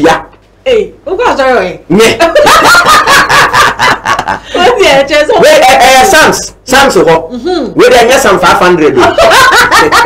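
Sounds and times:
people in conversation: 0.0 - 10.0.

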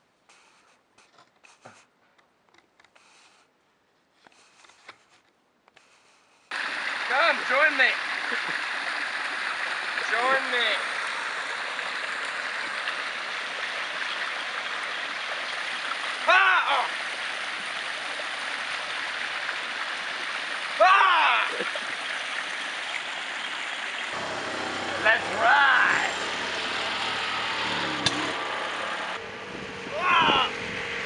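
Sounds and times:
water pouring over cascade: 6.5 - 27.7.

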